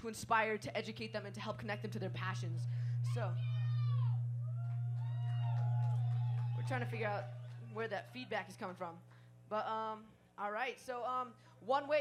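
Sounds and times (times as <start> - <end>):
low electrical hum: 0.0 - 12.0
microphone feedback squeal: 1.7 - 8.0.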